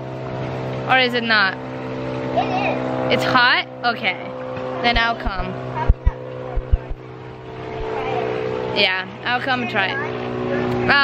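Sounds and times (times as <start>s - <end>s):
motor hum: 0.0s - 11.0s
short low thumps: 4.9s - 7.1s.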